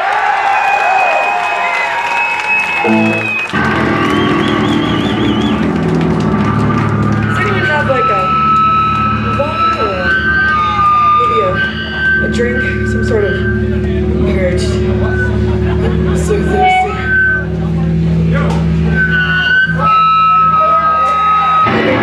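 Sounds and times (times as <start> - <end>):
crowd voices shouting: 0.0 - 12.2, 19.0 - 22.0
electric guitar feedback whine: 1.6 - 22.0
low sustained guitar notes: 2.8 - 22.0.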